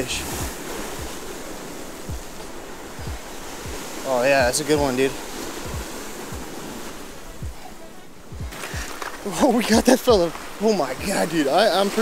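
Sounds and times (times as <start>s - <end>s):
surf washing over rocks: 0.0s - 12.0s
low thumps on microphone: 2.1s - 2.4s, 3.0s - 4.9s, 5.6s - 6.6s, 7.4s - 7.6s, 8.3s - 9.0s.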